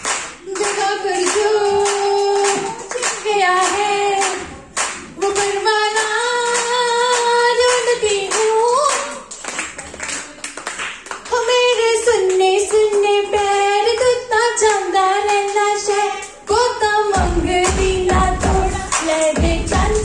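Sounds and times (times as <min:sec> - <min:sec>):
hands clapping in rhythm: 0:00.0 - 0:20.0
woman singing into a microphone: 0:00.4 - 0:09.3, 0:11.3 - 0:20.0.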